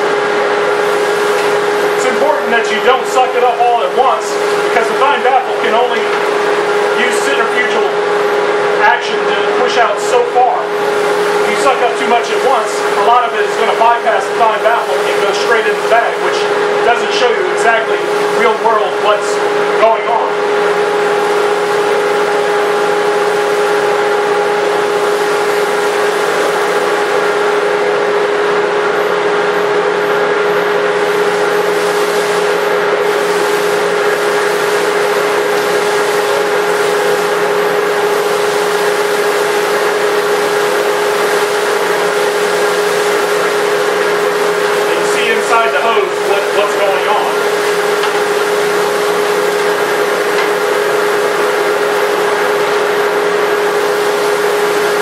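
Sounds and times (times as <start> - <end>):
dust collector whining: 0.0 - 55.0.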